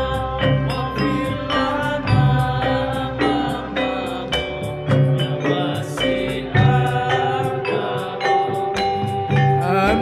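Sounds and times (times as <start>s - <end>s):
frame drums beating: 0.0s - 10.0s
men singing a chant: 0.0s - 10.0s.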